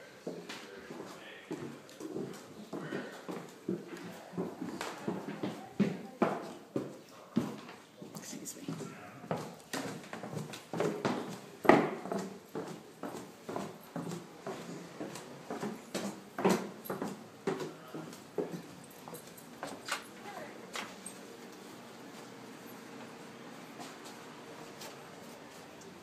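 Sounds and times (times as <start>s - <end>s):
footsteps on stairs and floor: 0.0s - 26.0s.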